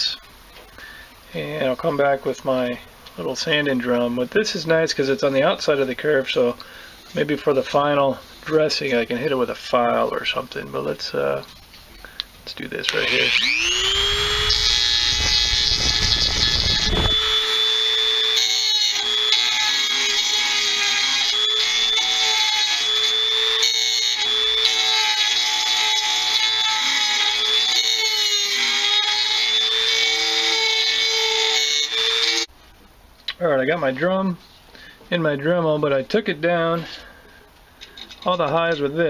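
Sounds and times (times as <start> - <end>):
rotary tool grinding metal: 12.9 - 32.5.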